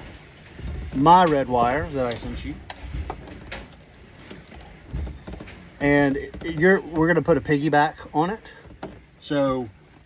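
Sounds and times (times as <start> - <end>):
wires rustling: 0.0 - 10.0.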